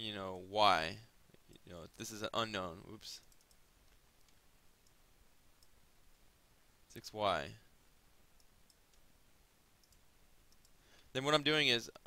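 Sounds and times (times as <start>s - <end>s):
very faint clicks: 3.2s - 6.2s, 8.3s - 9.1s, 9.8s - 11.1s.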